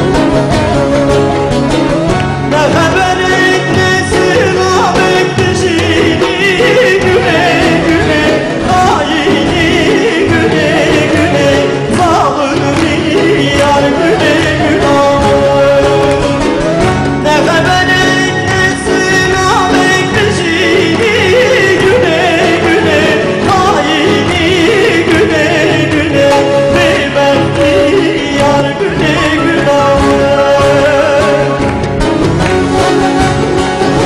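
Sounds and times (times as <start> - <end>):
band accompaniment: 0.0 - 34.0
instrumental backing: 0.0 - 34.0
man singing into microphone: 2.1 - 32.2.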